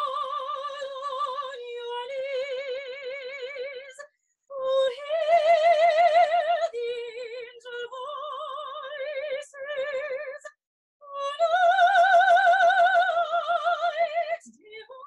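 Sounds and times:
soprano singing with vibrato: 0.0 - 15.0.

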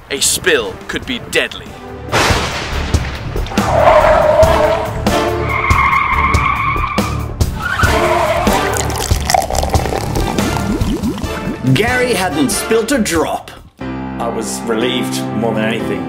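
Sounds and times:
music: 0.1 - 16.0
car tyres squealing: 3.5 - 9.0.

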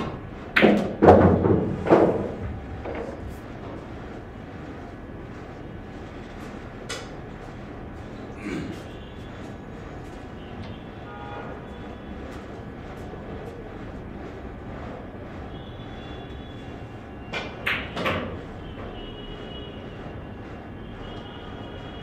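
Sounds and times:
billiard hall room noise: 0.0 - 22.0
clatter of knocks: 0.6 - 3.1.

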